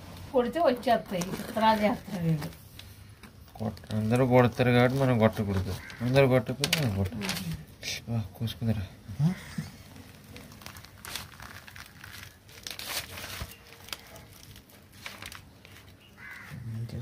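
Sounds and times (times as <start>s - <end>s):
fruit pulp fibres tearing: 9.3s - 16.6s.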